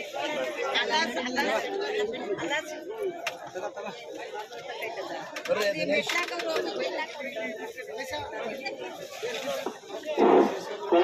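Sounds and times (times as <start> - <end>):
overlapping crowd chatter: 0.0 - 11.0.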